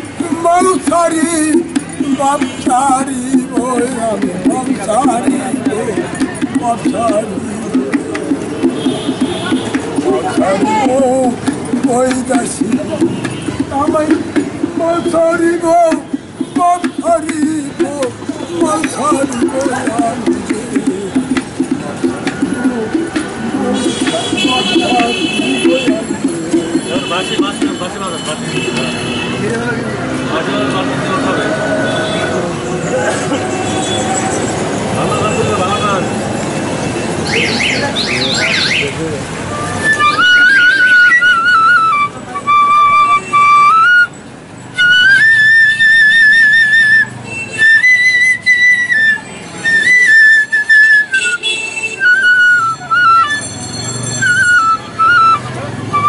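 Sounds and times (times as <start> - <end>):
bamboo flute melody: 0.1 - 27.7, 37.2 - 56.0.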